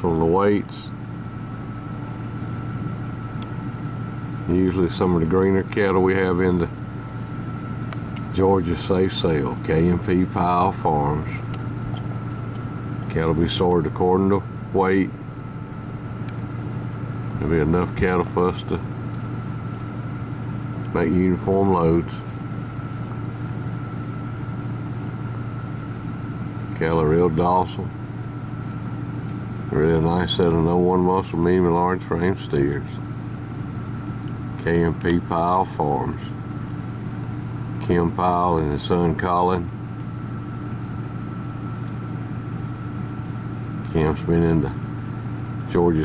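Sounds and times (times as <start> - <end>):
faint high whine: 0.0 - 46.0
low mechanical hum: 0.0 - 46.0.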